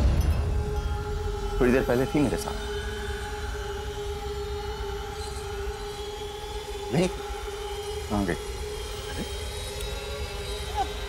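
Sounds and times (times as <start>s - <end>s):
dramatic drone with held tones: 0.0s - 11.0s.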